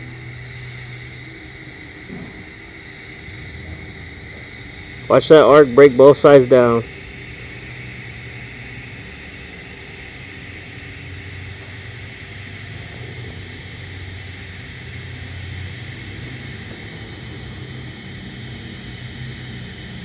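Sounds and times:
welding arc hissing: 0:00.0 - 0:20.0.

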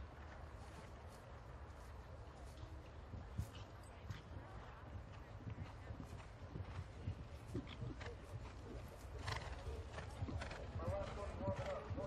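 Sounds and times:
hooves cantering on grass: 0:00.0 - 0:12.0.

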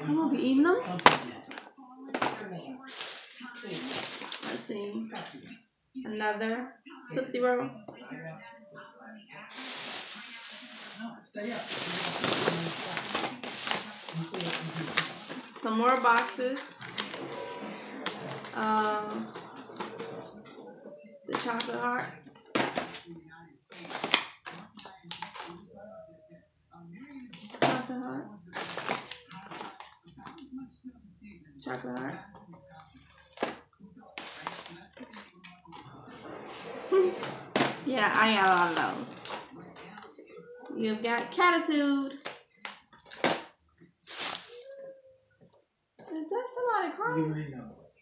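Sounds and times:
plastic bag rustling: 0:02.9 - 0:04.7, 0:09.5 - 0:15.7, 0:28.6 - 0:29.8, 0:34.2 - 0:35.2, 0:37.5 - 0:39.6, 0:44.1 - 0:44.6
low talking: 0:11.7 - 0:22.4.

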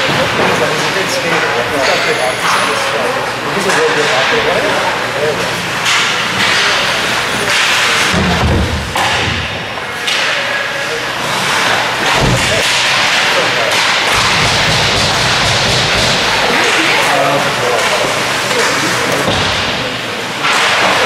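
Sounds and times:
hockey sticks and puck clacking: 0:00.0 - 0:02.9, 0:03.5 - 0:21.0.

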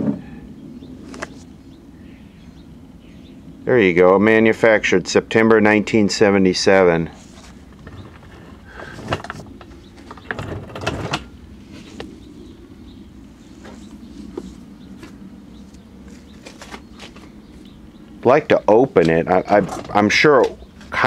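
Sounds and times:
low steady hum: 0:00.0 - 0:21.0
handling knocks and rubbing: 0:07.1 - 0:12.3, 0:13.4 - 0:17.8.

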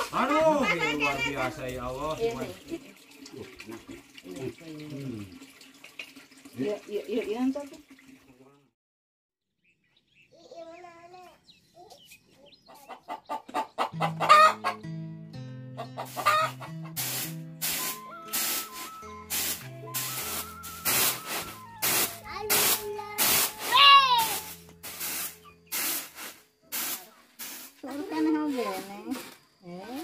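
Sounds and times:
background music with bass line: 0:14.0 - 0:24.9
steady drum beat: 0:16.9 - 0:26.2.

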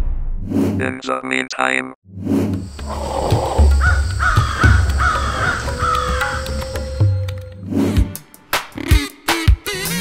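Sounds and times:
bird cawing: 0:02.6 - 0:07.4
background music with bass: 0:02.7 - 0:10.0.

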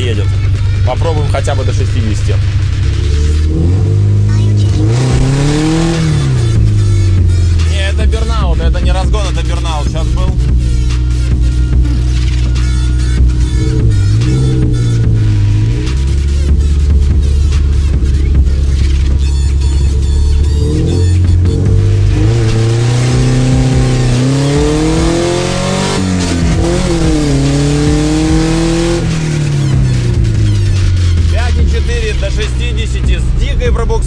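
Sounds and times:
car engine revving hard: 0:01.6 - 0:10.7, 0:12.9 - 0:32.4.

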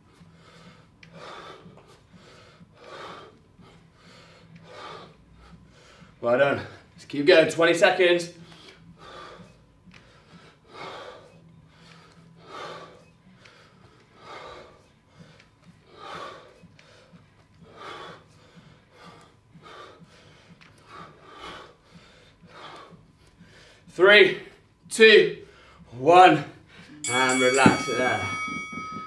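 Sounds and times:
man breathing hard: 0:00.0 - 0:07.0, 0:08.3 - 0:24.7, 0:25.4 - 0:26.9.

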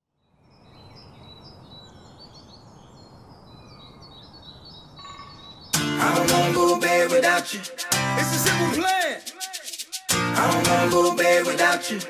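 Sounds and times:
birds chirping: 0:00.0 - 0:07.0
full-band music: 0:07.8 - 0:08.8.

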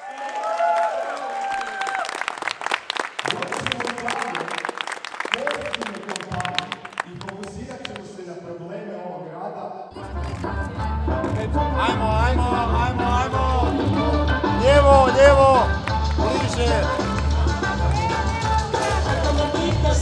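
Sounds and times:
crowd clapping: 0:00.0 - 0:08.2, 0:13.1 - 0:20.0
loud music with heavy bass: 0:09.9 - 0:20.0.

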